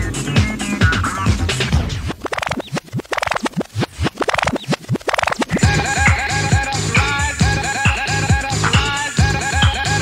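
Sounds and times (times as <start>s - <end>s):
music with steady beat: 0.0s - 10.0s
vinyl record scratching: 0.0s - 10.0s.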